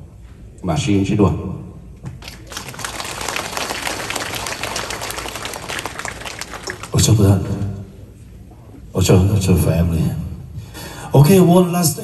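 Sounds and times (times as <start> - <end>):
audience clapping: 2.1 - 7.5.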